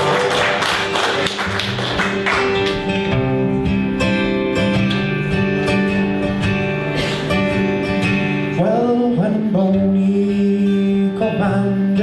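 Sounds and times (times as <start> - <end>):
audience clapping: 0.0 - 3.1
acoustic guitar strumming: 0.0 - 12.0.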